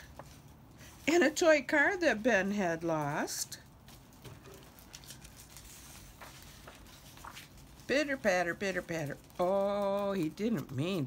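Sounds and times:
page turning rustle: 0:00.0 - 0:01.2, 0:03.0 - 0:11.0.

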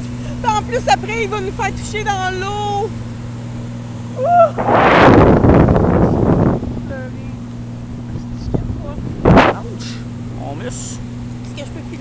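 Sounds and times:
steady low hum: 0:00.0 - 0:12.0
wind buffeting microphone: 0:04.3 - 0:09.8.

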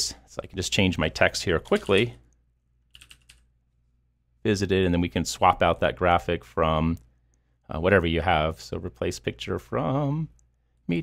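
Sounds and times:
computer keyboard typing: 0:02.9 - 0:03.5.

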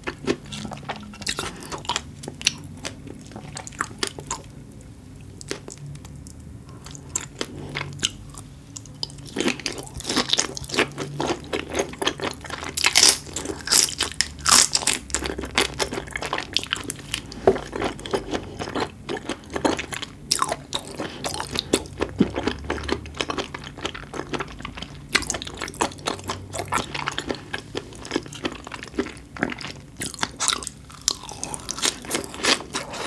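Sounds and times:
chewing with wet clicks: 0:00.0 - 0:32.9.

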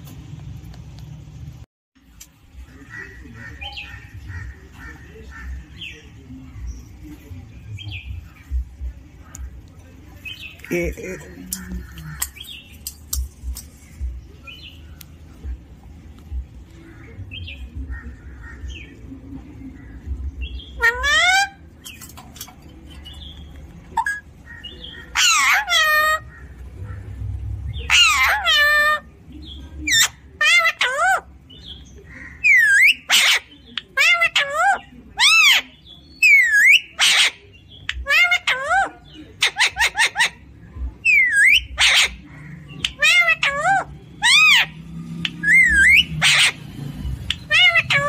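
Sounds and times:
low rumble of handling: 0:00.0 - 0:01.6
parakeet calling: 0:19.8 - 0:22.3, 0:24.0 - 0:29.1, 0:29.9 - 0:48.0.

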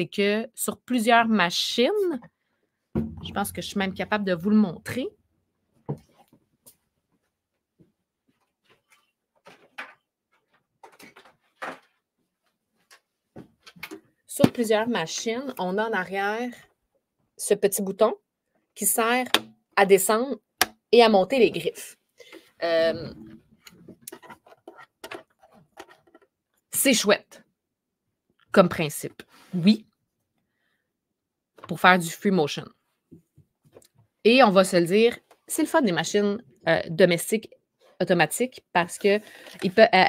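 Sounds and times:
objects knocking and rustling: 0:07.7 - 0:12.2, 0:23.0 - 0:26.4.

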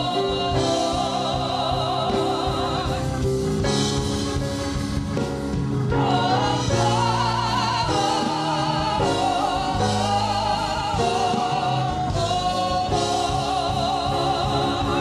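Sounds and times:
choir singing gospel song: 0:00.0 - 0:15.0.

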